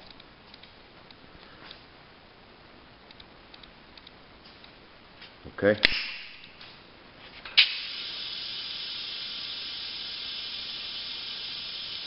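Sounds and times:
sharp click: 0:05.8 - 0:06.6
gas venting hiss: 0:07.6 - 0:12.0.

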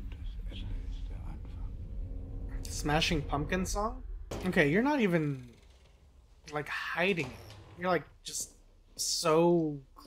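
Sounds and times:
low steady hum: 0:00.0 - 0:08.8
whispered dialogue: 0:00.0 - 0:10.0.

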